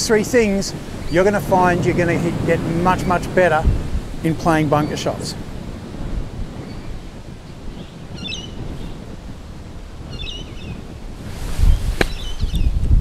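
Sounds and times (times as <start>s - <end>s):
wind buffeting microphone: 0.0s - 13.0s
bird chirping: 7.7s - 9.0s, 10.1s - 10.8s, 11.6s - 12.8s
golf club striking sand: 11.2s - 12.6s.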